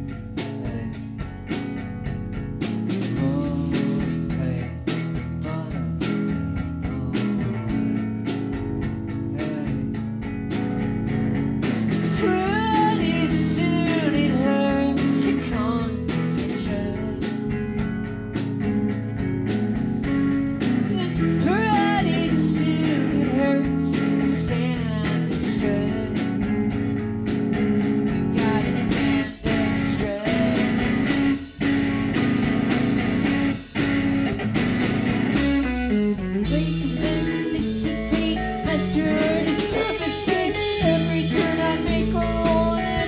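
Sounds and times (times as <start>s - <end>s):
bass guitar: 0.0s - 43.0s
drums with cymbals: 0.0s - 43.0s
electric guitar: 0.0s - 43.0s.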